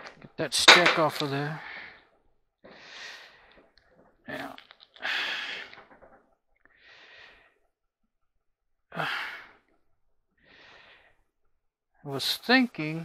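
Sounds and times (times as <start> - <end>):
man breathing heavily: 1.6 - 3.8, 4.9 - 7.7, 8.9 - 11.4.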